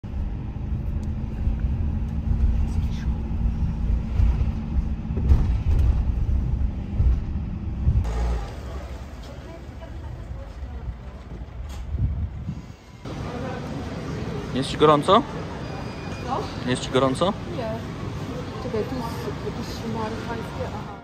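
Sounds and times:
vehicle rumble on road: 0.0 - 21.0.

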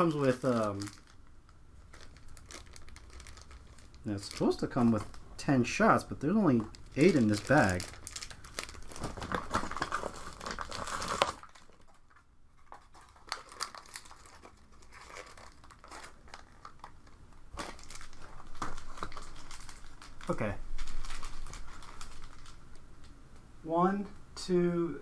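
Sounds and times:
plastic bag crinkling: 0.0 - 23.1.

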